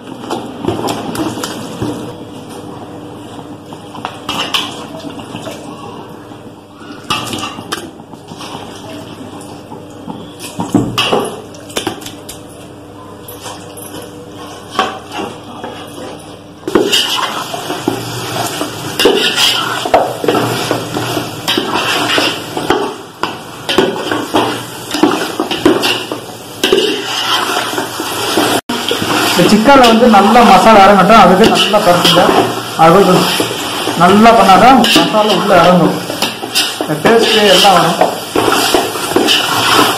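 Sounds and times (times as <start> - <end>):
metal spoon scraping a pot: 18.4 - 22.7, 25.0 - 27.8, 34.4 - 39.9.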